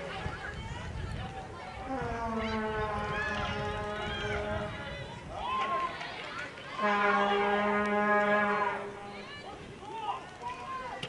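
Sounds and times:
flat-pitched horn drone: 1.8s - 4.8s, 6.8s - 9.3s.

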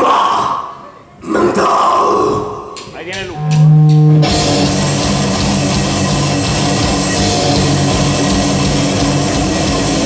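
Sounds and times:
drums: 2.1s - 10.0s
distorted electric guitars: 2.8s - 10.0s.

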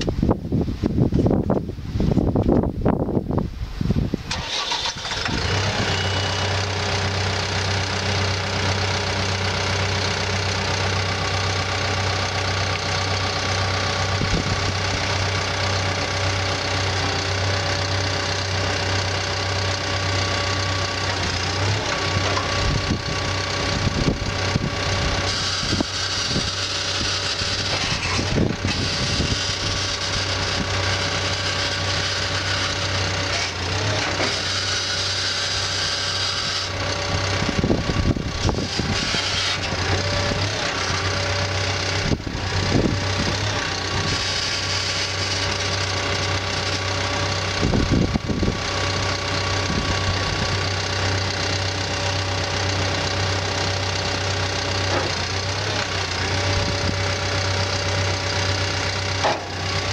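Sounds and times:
diesel engine idling: 4.2s - 59.9s.

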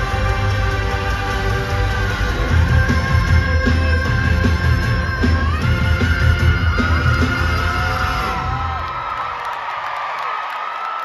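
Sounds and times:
rock band with heavy bass: 0.0s - 8.7s
crowd cheering and screaming: 0.0s - 11.0s.

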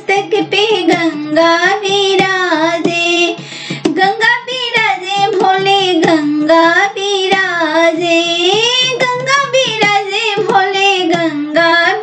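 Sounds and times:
high voice singing folk song: 0.0s - 12.0s
sharp percussive strikes: 0.0s - 12.0s.

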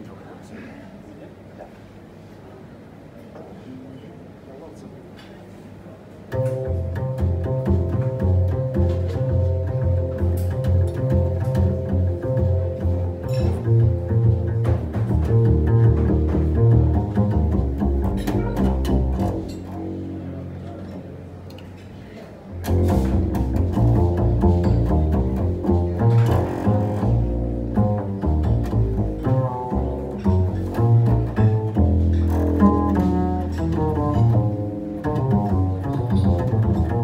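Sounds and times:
plucked double bass: 6.2s - 37.0s.

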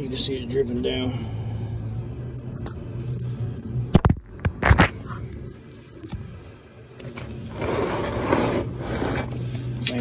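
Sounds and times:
low steady hum: 0.0s - 10.0s
scraping rubs: 7.4s - 9.5s.

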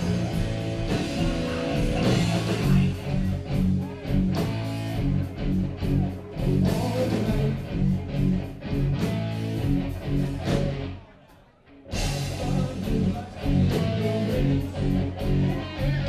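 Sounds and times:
live rock band playing: 0.0s - 11.0s, 11.8s - 16.0s.

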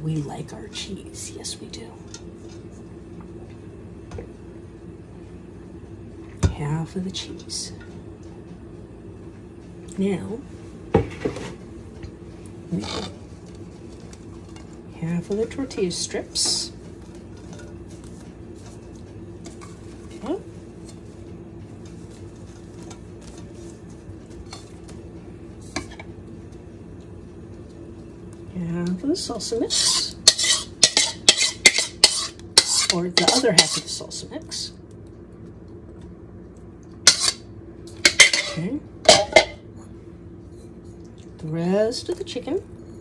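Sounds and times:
low steady hum: 0.0s - 43.0s
spoon scraping mixing bowl: 12.7s - 15.4s, 29.7s - 34.0s, 37.1s - 37.4s.

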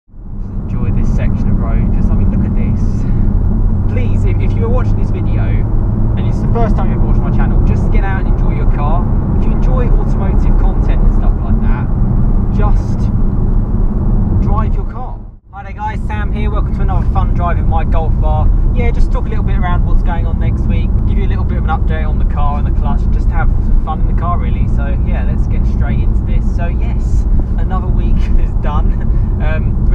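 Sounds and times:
car engine drone from inside cabin: 0.1s - 29.9s
road noise: 0.1s - 29.9s.

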